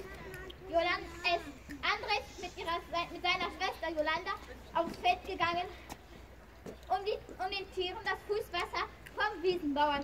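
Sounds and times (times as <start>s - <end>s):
child talking: 0.0s - 6.0s, 6.9s - 10.0s.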